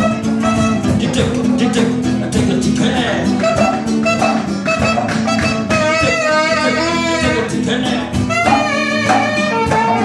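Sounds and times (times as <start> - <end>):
acoustic guitar: 0.0 - 10.0
percussion rhythm: 0.0 - 10.0
saxophone long note: 3.4 - 7.5.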